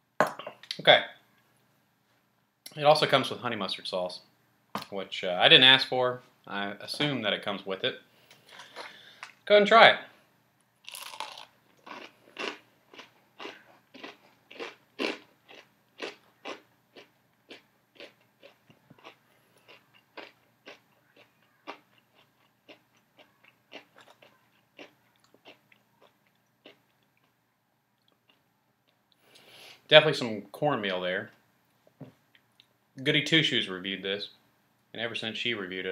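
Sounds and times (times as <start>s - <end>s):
crunching while chewing fried chicken: 10.8s - 27.3s.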